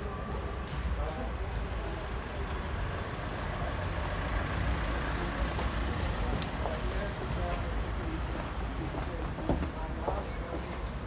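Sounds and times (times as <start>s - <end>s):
vehicle engine rumble: 0.0s - 9.9s
faint voices: 0.0s - 11.0s.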